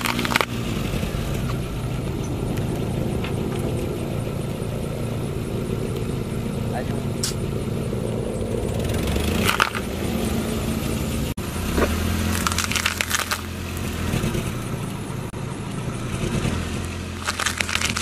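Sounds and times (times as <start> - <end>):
car engine running slowly: 0.0 - 18.0
tyre crushing vegetables: 11.7 - 13.6, 17.2 - 18.0.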